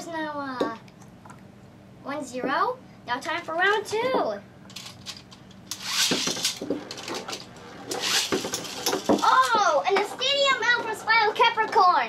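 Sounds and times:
spinning tops clashing: 4.7 - 9.6
spinning tops whirring: 4.7 - 11.8.

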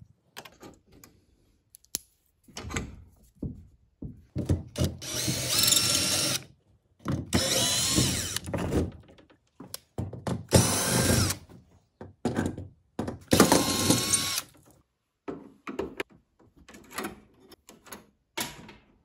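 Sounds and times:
cordless drill driving screws: 4.8 - 6.5, 7.3 - 8.5, 10.5 - 11.4, 13.3 - 14.5.

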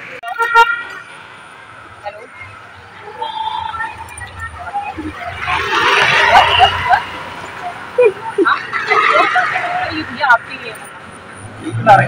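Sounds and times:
street traffic hum: 0.0 - 12.0
voices talking: 0.0 - 12.0.

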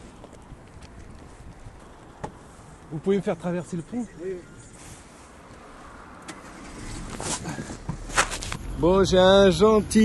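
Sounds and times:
rustling: 4.5 - 8.6.

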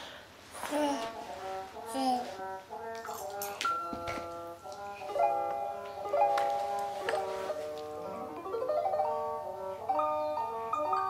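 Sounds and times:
toy playing simple tune: 1.7 - 11.0.

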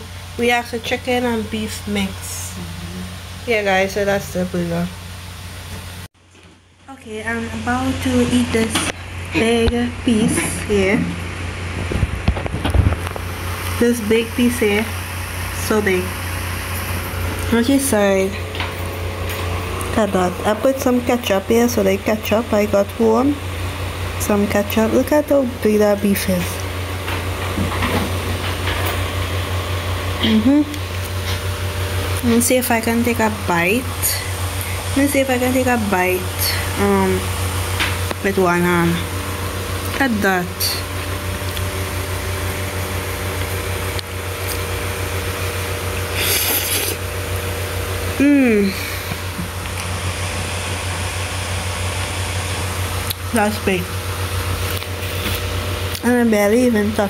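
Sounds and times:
constant hiss: 0.0 - 6.1
low droning hum: 6.9 - 57.0.

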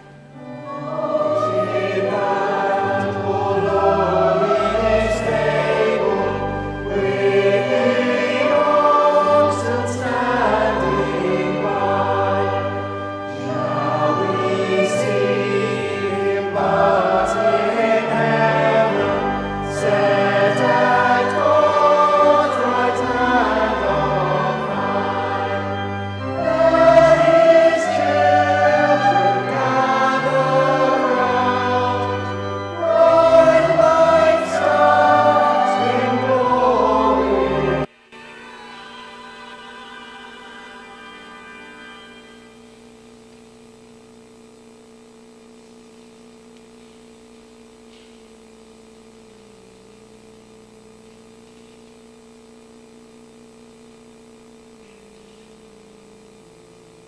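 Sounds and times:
choir singing a carol: 0.0 - 42.6.

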